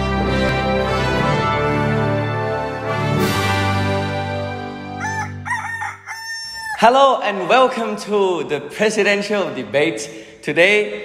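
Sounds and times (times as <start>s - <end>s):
rooster crowing: 5.0s - 6.9s.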